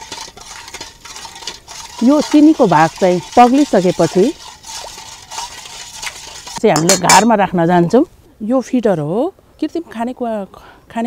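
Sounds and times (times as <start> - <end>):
ladle scraping and clinking on pot: 0.0 - 7.4
ladle stirring water in a pot: 0.0 - 7.4.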